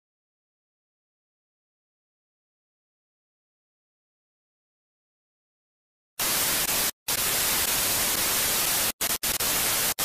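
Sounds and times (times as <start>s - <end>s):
television static hiss: 6.2s - 10.0s.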